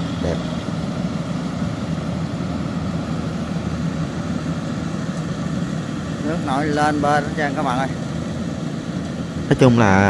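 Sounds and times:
combine harvester engine drone: 0.0s - 10.0s.

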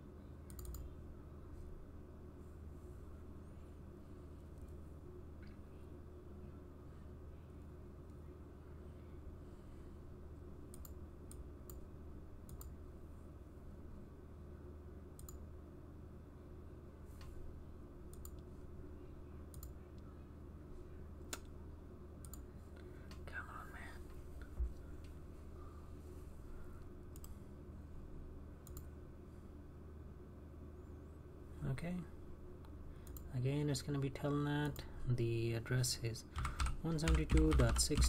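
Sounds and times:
low steady hum: 0.0s - 38.0s
computer mouse clicking: 0.5s - 0.9s, 10.7s - 11.8s, 12.5s - 12.8s, 15.2s - 15.4s, 18.1s - 18.5s, 19.5s - 20.0s, 21.3s - 21.5s, 22.2s - 22.4s, 27.1s - 27.4s, 28.6s - 28.9s, 33.0s - 33.3s, 36.4s - 38.0s.

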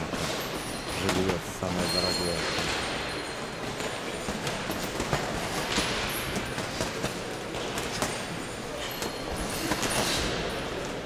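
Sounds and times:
boxing gloves slapping: 2.4s - 10.5s.

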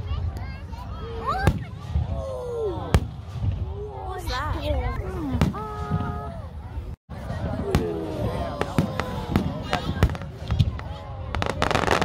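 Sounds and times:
crowd voices: 0.0s - 12.0s
fireworks bursting: 7.2s - 12.0s.

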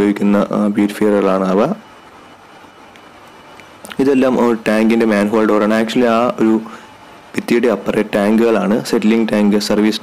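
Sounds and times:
engine room machinery drone: 0.0s - 10.0s.

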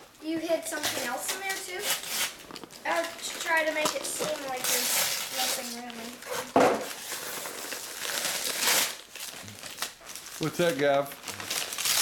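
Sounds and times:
paper rustling and crinkling: 0.7s - 12.0s.

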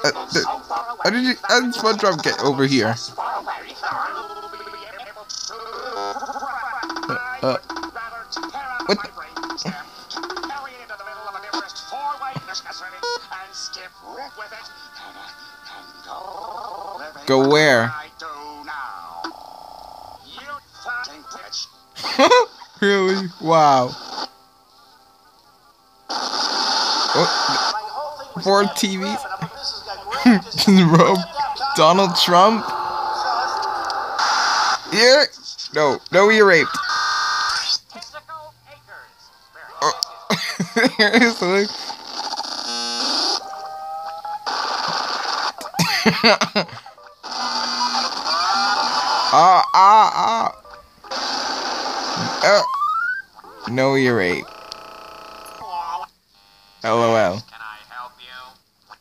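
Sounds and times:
chopped pitch-shifted cartoon voice: 47.9s - 50.6s.

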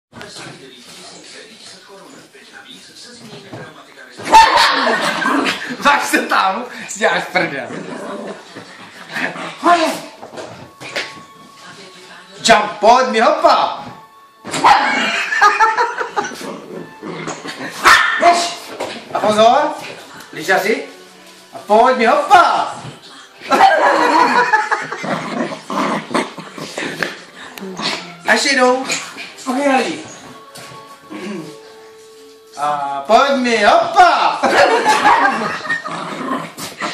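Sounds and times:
people laughing: 4.5s - 5.8s, 14.8s - 16.4s, 23.5s - 25.2s, 34.4s - 36.2s
small dog yapping: 17.8s - 18.2s.

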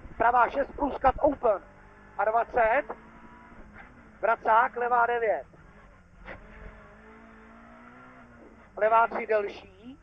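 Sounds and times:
car engine heard from cabin: 0.0s - 10.0s.

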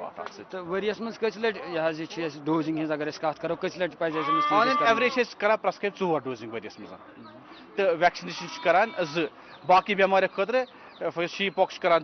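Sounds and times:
man talking: 0.0s - 12.0s
sheep bleating: 4.1s - 5.2s, 8.3s - 9.3s.

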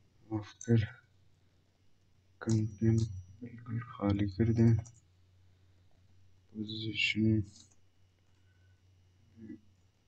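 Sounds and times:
person speaking: 2.4s - 4.9s, 6.6s - 7.6s.

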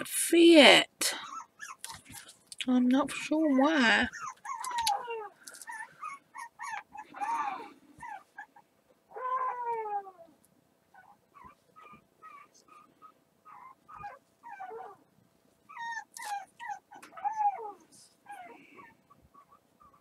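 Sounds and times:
dogs whining and yipping: 1.2s - 2.2s, 3.4s - 15.1s, 15.7s - 20.0s.

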